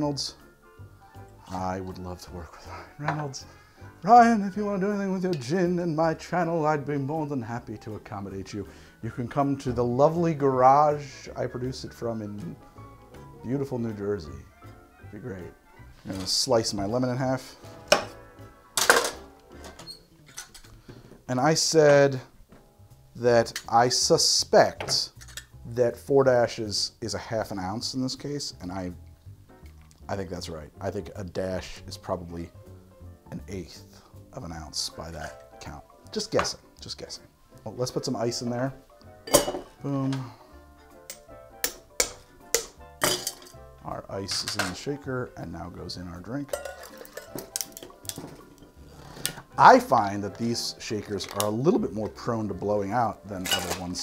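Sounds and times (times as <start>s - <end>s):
soft background music: 0.0s - 54.0s
ice clinking in cocktail shaker: 46.5s - 48.4s, 53.4s - 53.9s
drink pouring over ice: 46.8s - 49.3s.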